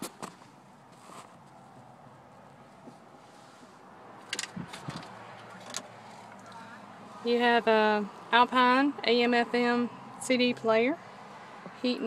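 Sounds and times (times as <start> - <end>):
vehicle cabin hum: 0.0 - 12.0.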